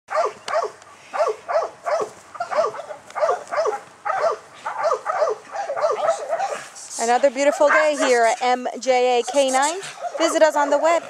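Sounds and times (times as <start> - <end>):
dog barking: 0.1 - 6.7, 7.5 - 8.2, 9.8 - 11.0.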